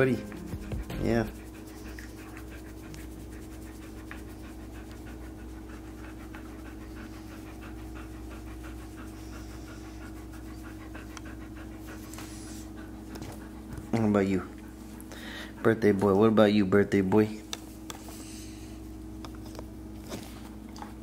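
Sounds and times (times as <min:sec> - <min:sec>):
dog panting: 0:00.0 - 0:18.9.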